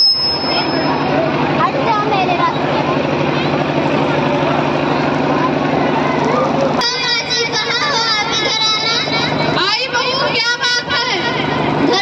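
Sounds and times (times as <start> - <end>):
crowd voices: 0.0 - 12.0
pulsing machine drone: 0.0 - 12.0.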